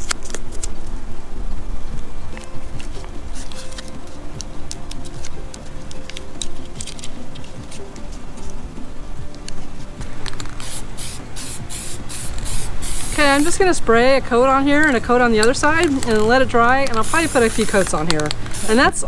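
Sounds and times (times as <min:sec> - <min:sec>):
tape crackling and clicking: 0:00.0 - 0:01.0, 0:01.9 - 0:19.0
aerosol can rattling: 0:10.2 - 0:13.8, 0:14.7 - 0:19.0.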